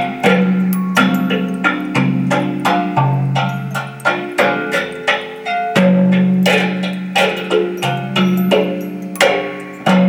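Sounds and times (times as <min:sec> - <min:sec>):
thumb piano plucked: 0:00.0 - 0:10.0.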